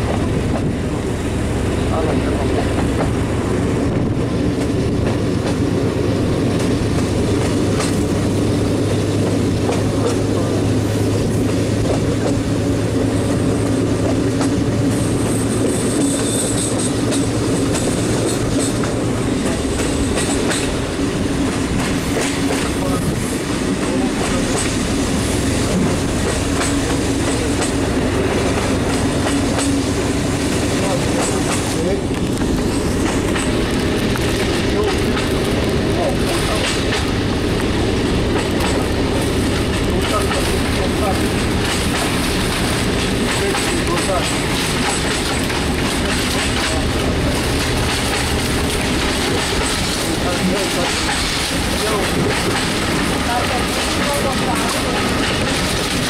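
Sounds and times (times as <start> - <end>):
railcar engine drone: 0.0 - 56.0
wheels running on rails: 0.0 - 56.0.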